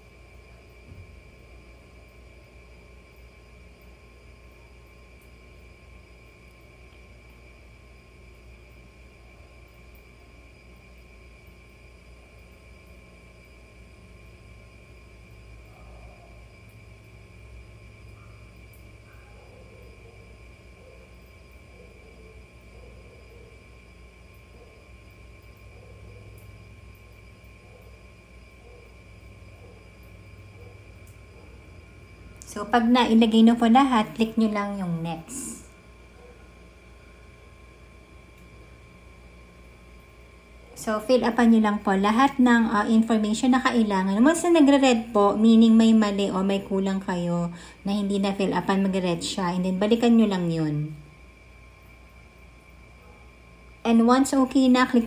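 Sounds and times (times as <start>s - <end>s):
faint high-pitched whine: 0.0s - 55.0s.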